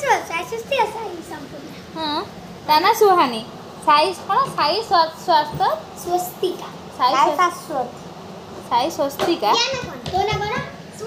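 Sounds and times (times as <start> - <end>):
children talking and calling: 0.0 - 11.0.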